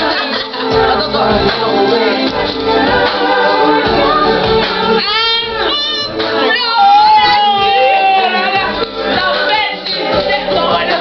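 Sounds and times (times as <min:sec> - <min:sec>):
music: 0:00.0 - 0:11.0
young women singing together: 0:00.0 - 0:11.0.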